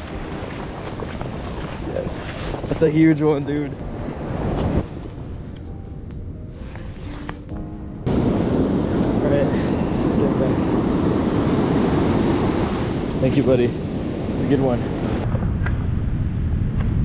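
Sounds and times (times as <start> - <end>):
ocean surf washing in: 0.0 - 5.4, 8.0 - 15.2
wind buffeting microphone: 0.0 - 6.4, 8.0 - 17.0.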